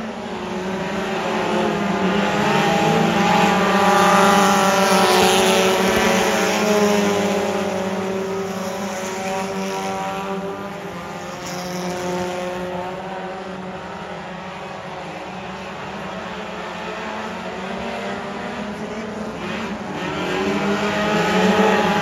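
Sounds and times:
race car engines passing: 0.0 - 22.0.

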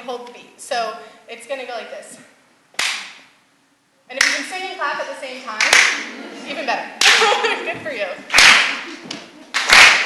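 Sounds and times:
sharp hand clap in reverberant room: 2.8 - 3.3, 4.2 - 4.5, 5.6 - 6.1, 7.0 - 7.4, 8.3 - 10.0.

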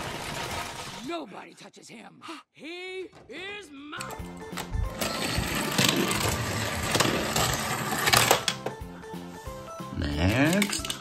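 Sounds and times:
toy car clattering down plastic ramps: 0.0 - 1.1, 5.0 - 8.7, 10.3 - 11.0
background music: 3.3 - 11.0.

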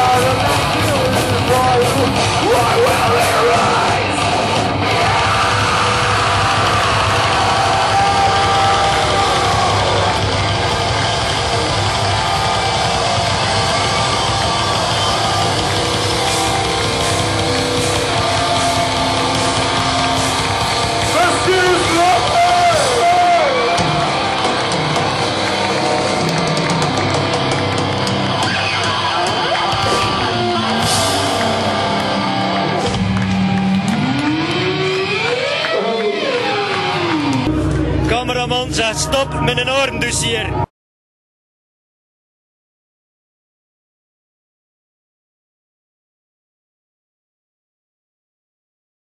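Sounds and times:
heavy metal band playing live: 0.0 - 40.6.

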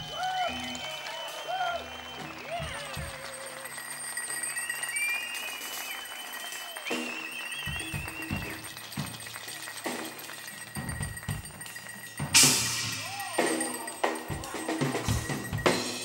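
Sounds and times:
long held high tones: 0.0 - 9.0, 9.8 - 16.0
live band percussion: 0.0 - 16.0.

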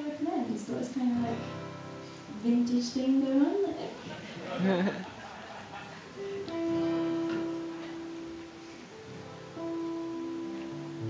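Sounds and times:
acoustic guitar chords ringing: 1.1 - 3.0, 5.6 - 11.0.

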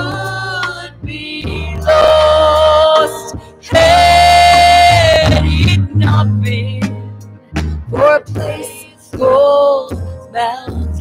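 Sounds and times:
steady bass line: 0.0 - 11.0.

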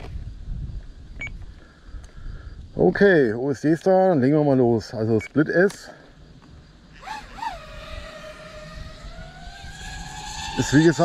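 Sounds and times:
drone motors whining: 6.4 - 11.0.

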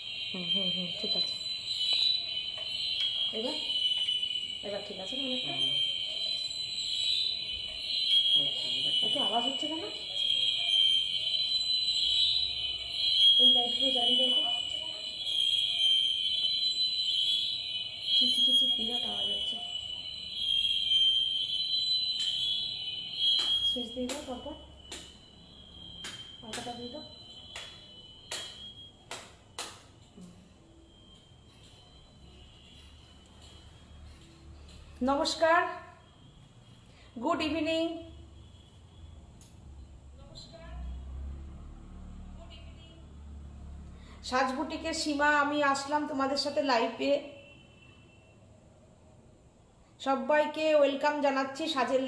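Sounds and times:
shrill electronic tone: 0.0 - 29.1.

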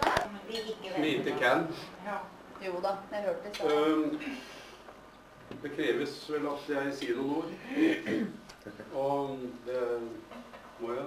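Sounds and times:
man speaking: 5.6 - 10.2.

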